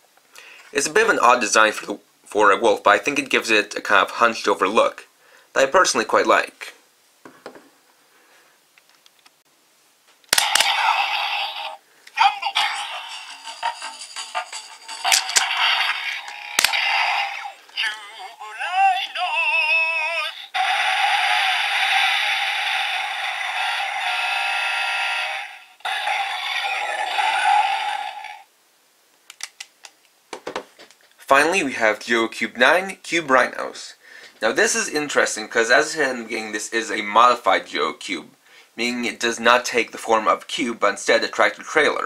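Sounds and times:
toy electronic sound effects: 10.3s - 11.8s, 12.4s - 28.4s
toy speaker music: 10.4s - 28.4s
synthesized voice: 10.6s - 14.0s, 15.4s - 22.2s, 25.9s - 28.4s.

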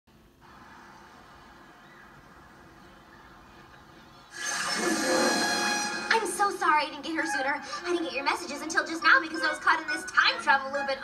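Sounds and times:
shimmering magic whoosh: 4.4s - 6.5s.

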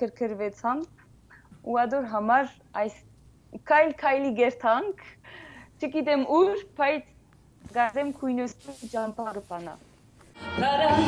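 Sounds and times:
woman talking: 0.0s - 0.9s, 1.6s - 5.2s, 5.8s - 9.8s.

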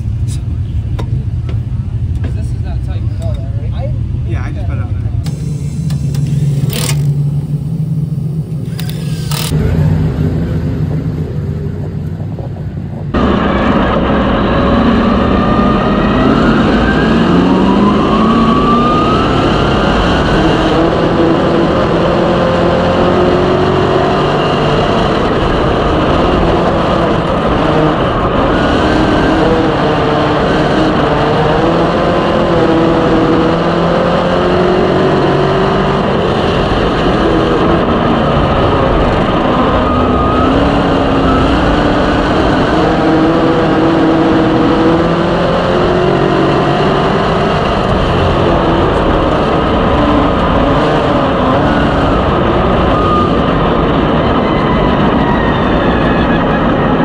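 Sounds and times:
race car engine running loud: 0.0s - 57.0s
cordless tool bursts: 8.7s - 9.6s.

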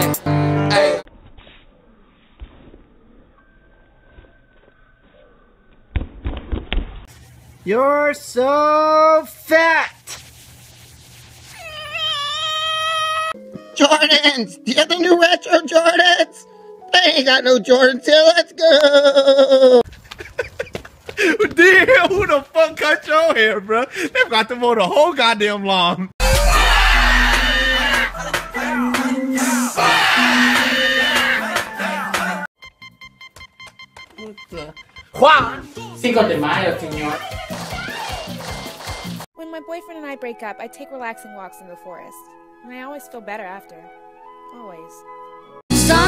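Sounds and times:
baby crying: 11.6s - 13.4s
digital alarm clock beeping: 32.6s - 35.7s.

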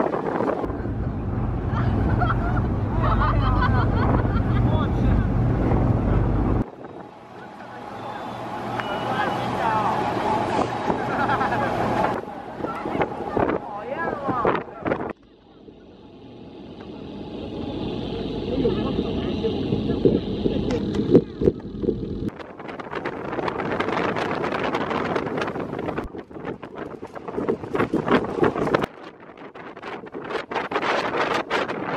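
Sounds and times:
wind buffeting microphone: 0.0s - 15.4s, 16.2s - 31.9s
ferry engine rumble: 0.0s - 28.9s
churning wake water: 0.0s - 29.0s
voices: 0.6s - 22.0s
people talking in background: 6.8s - 21.6s.

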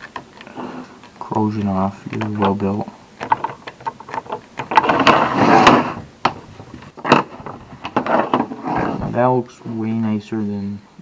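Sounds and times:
scraper scratching metal: 4.8s - 6.0s, 8.0s - 9.0s.

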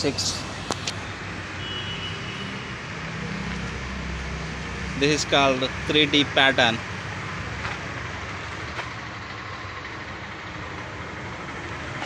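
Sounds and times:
hum of passing vehicles: 0.0s - 12.0s
low traffic rumble: 0.0s - 12.0s.

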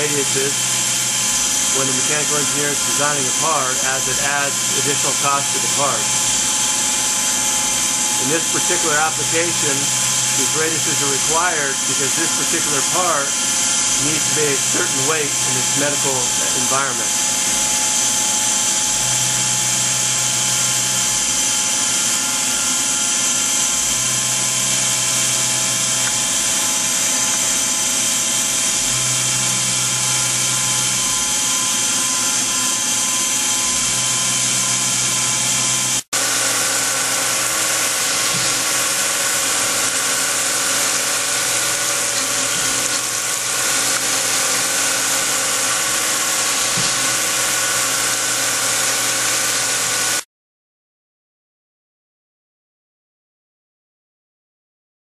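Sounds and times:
coolant spraying: 0.0s - 6.4s, 36.2s - 50.1s
milling machine cutting metal: 0.0s - 50.2s.

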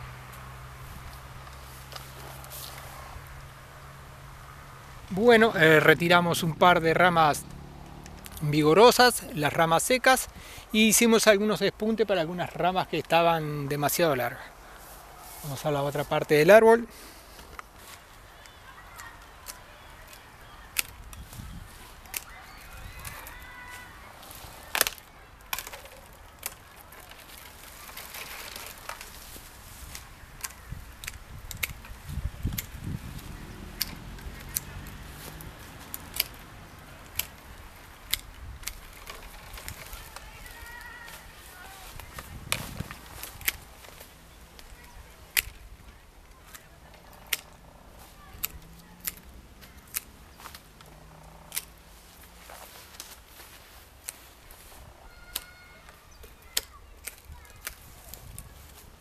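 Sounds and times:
pruning shears snipping branches: 0.0s - 3.5s, 5.1s - 59.0s.

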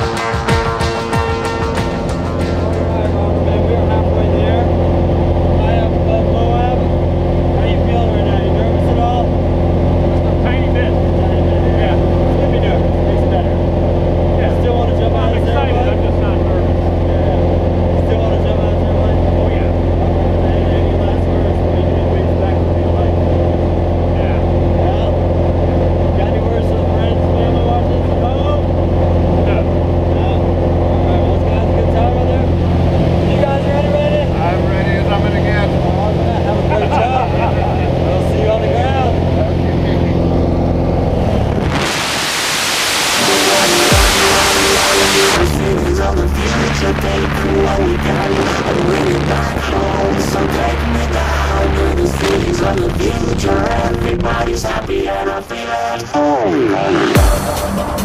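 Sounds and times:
propeller plane engine drone: 0.0s - 55.3s
faint voices: 0.8s - 41.9s, 43.2s - 57.4s.

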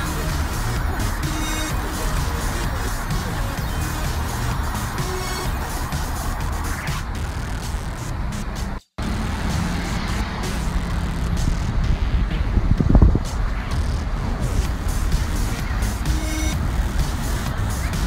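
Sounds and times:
hum of passing cars: 0.0s - 18.0s
low traffic rumble: 0.0s - 18.0s.

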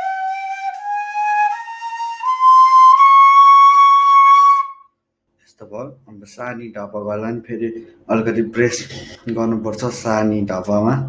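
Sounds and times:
bamboo flute high note: 0.0s - 4.9s.

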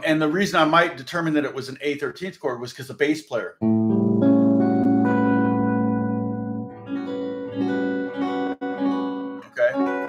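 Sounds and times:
electric guitar chord ringing: 3.6s - 10.0s
guitar notes picked: 3.6s - 10.0s.

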